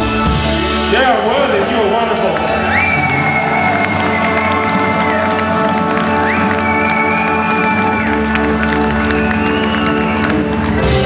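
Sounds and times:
bass guitar: 0.0 - 11.0
drums: 0.0 - 11.0
organ chords: 0.0 - 11.0.

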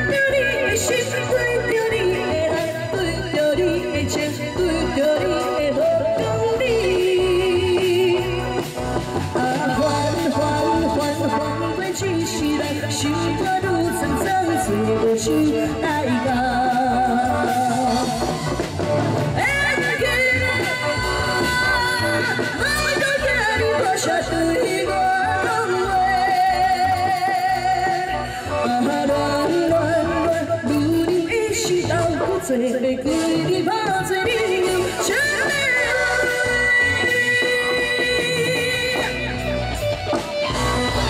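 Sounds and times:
amplified backing music: 0.0 - 41.0
instrumental accompaniment with beat: 0.0 - 41.0
woman singing into a microphone: 0.0 - 41.0.

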